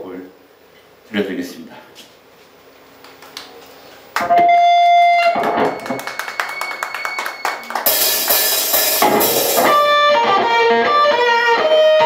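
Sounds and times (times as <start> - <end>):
electric guitar: 4.2 - 12.0
heavy metal band with drums: 7.9 - 10.0.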